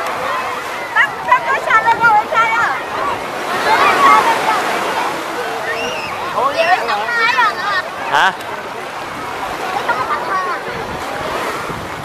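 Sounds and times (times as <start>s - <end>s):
small waves washing: 0.0s - 12.0s
voices and calls of bathers: 0.0s - 12.0s
wind on microphone: 8.9s - 12.0s.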